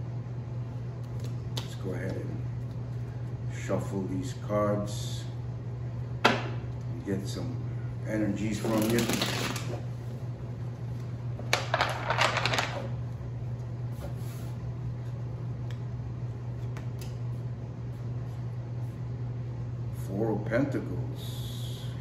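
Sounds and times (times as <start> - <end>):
steady low hum: 0.0 - 22.0
cards shuffled by hand: 8.6 - 9.8.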